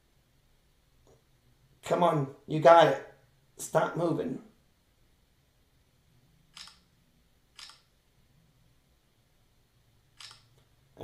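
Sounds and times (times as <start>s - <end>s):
camera shutter clicks: 6.5s - 6.9s, 7.6s - 7.9s, 10.2s - 10.6s.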